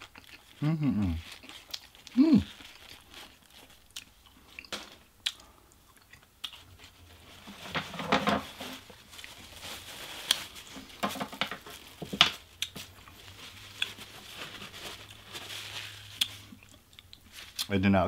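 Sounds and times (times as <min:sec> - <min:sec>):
close-up chewing: 0:00.0 - 0:07.0, 0:16.1 - 0:17.7.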